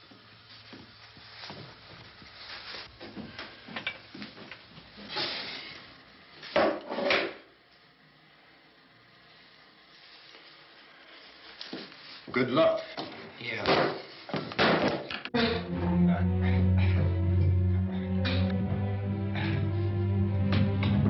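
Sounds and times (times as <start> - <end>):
film score music: 15.3 - 21.0.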